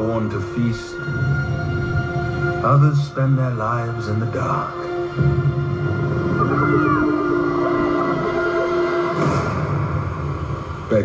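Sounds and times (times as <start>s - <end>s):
film trailer score chords: 0.0s - 11.0s.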